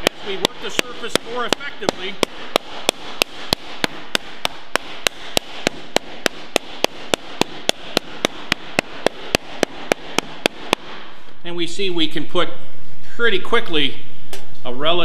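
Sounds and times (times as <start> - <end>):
hammer slapping sheet metal: 0.0 - 11.2.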